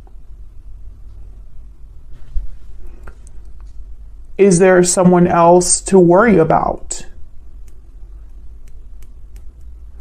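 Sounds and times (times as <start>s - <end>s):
low steady rumble: 0.0s - 10.0s
faint clicks: 7.6s - 9.8s.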